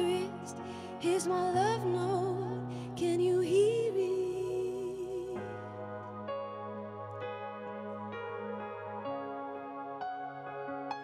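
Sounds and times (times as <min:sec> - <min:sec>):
woman singing into microphone: 0:00.0 - 0:05.4.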